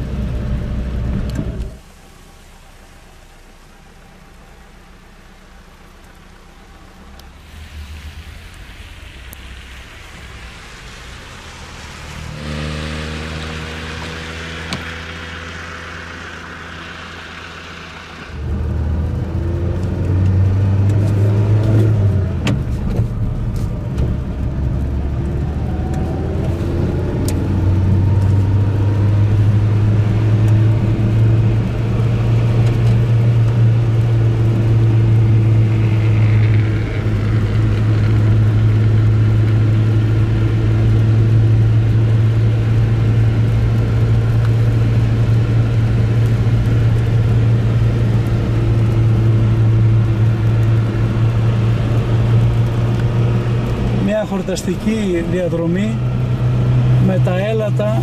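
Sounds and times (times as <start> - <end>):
car engine hum: 0.0 - 58.0
tyre noise on wet road: 0.0 - 58.0.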